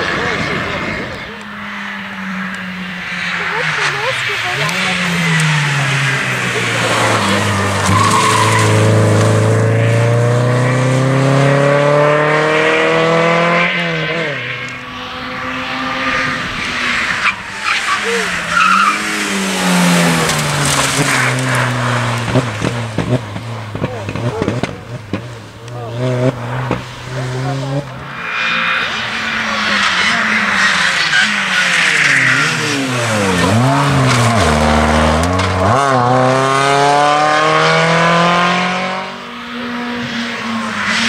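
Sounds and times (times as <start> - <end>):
rally car engine accelerating: 0.0 - 41.0
rally car engine passing: 0.0 - 41.0.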